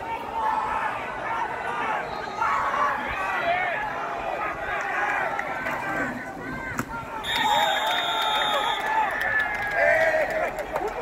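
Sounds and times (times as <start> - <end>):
players shouting: 0.0 - 11.0.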